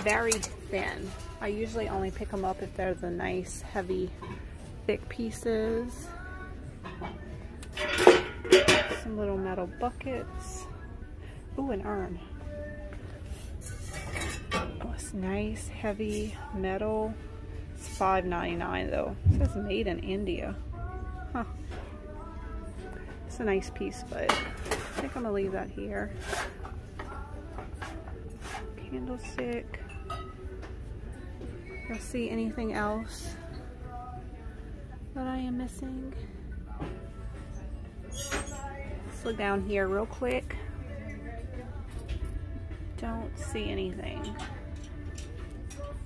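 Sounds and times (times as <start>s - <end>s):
rustling scrapes of objects on shelf: 26.1s - 26.8s, 27.7s - 28.8s.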